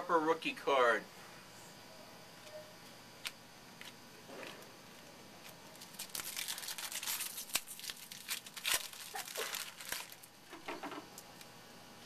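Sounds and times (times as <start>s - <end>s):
foil wrapper tearing and crinkling: 5.4s - 10.4s.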